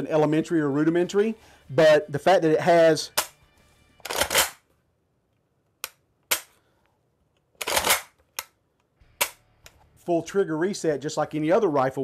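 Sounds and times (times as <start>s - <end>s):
trigger clicks: 7.6s - 9.8s.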